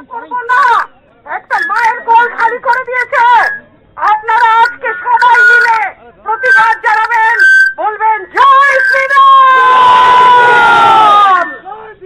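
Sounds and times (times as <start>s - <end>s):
woman speaking into microphone: 0.2s - 7.4s.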